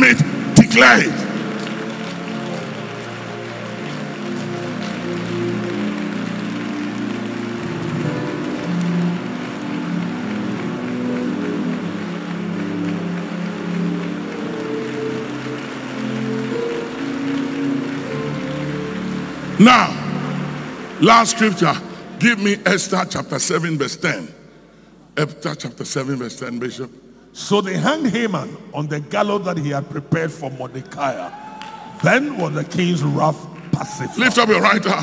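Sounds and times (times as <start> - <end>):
congregation praying aloud: 0.0 - 1.8, 31.0 - 35.0
background music of held chords: 0.0 - 22.6.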